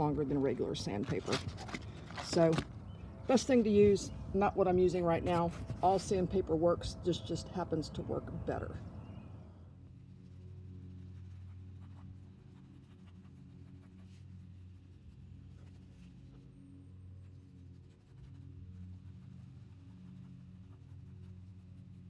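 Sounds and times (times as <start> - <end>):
music of sustained low tones: 0.0 - 22.0.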